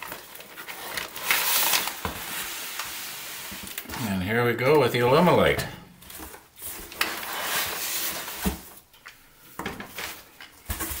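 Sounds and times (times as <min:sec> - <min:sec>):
newspaper packing rustling: 0:00.0 - 0:08.9, 0:09.6 - 0:11.0.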